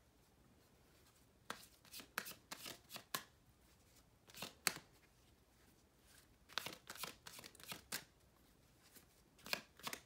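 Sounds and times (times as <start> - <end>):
cards being shuffled: 1.4 - 3.3, 4.3 - 5.2, 6.1 - 8.1, 8.8 - 10.0.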